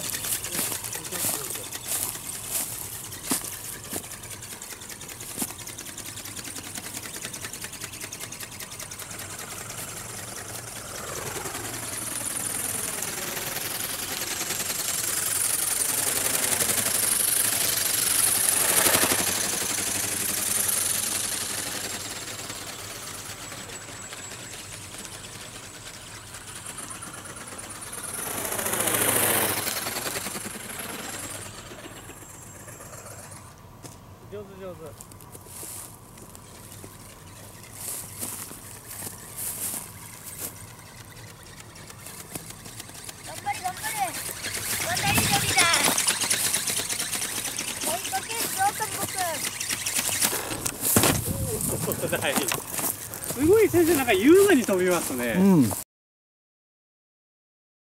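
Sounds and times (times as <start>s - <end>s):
model motor buzzing: 0.0s - 33.7s, 34.4s - 55.8s.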